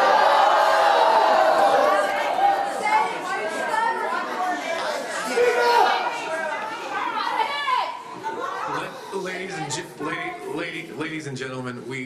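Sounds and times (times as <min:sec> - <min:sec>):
low unclear chatter: 0:00.0 - 0:12.0.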